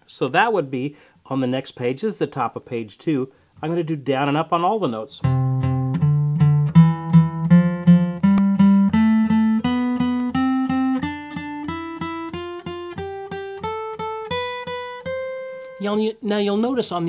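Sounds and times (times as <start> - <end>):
acoustic guitar picking a scale: 5.2 - 17.0.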